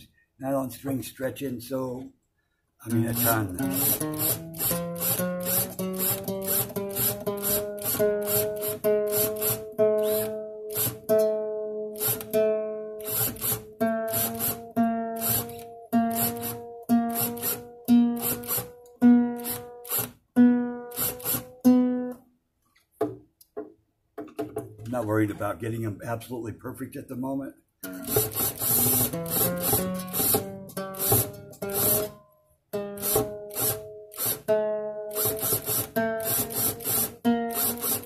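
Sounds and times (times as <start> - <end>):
acoustic guitar string plucked: 2.9 - 13.0, 13.6 - 22.2, 27.8 - 35.1.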